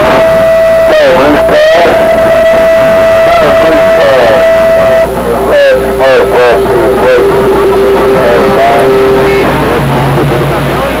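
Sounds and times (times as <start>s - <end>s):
radio hiss: 0.0s - 9.9s
music over radio speaker: 0.0s - 11.0s.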